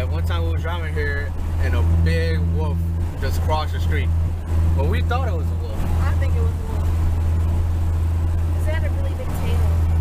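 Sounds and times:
car engine and tyres droning: 0.0 - 10.0.

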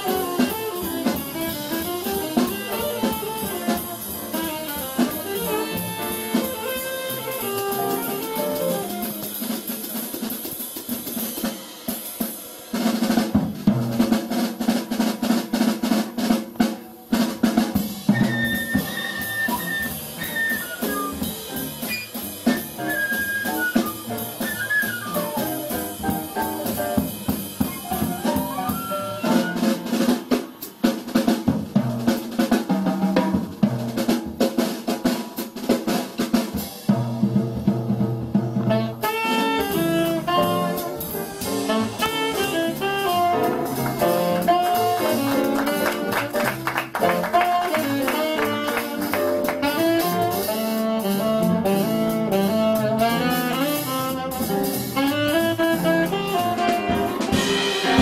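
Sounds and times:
saxophone: 0.0 - 9.4, 18.1 - 30.0, 38.6 - 58.0
jazz drum kit: 0.0 - 58.0
piano: 0.0 - 58.0
upright bass: 39.8 - 50.4.

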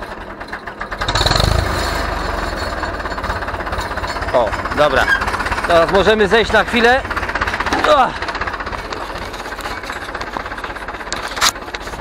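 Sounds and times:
tractor diesel engine idling: 0.0 - 12.0.

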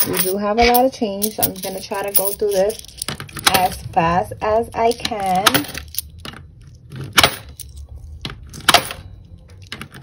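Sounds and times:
coins clinking: 0.0 - 10.0.

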